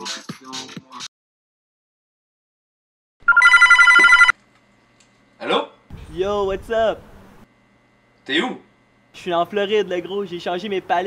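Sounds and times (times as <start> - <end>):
desk telephone bell ringing: 3.3 - 4.3.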